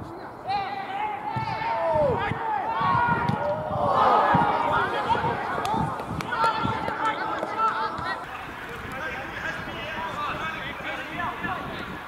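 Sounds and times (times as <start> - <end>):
players shouting: 0.4 - 11.6.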